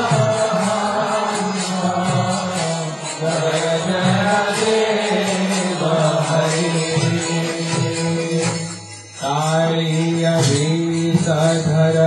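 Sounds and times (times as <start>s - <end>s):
devotional chanting melody: 0.0s - 12.0s
light percussion strikes: 0.0s - 12.0s.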